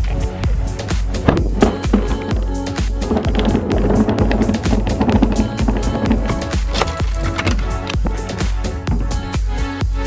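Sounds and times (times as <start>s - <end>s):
electronic music with beat: 0.0s - 10.0s
rough rolling rumble: 0.6s - 9.8s.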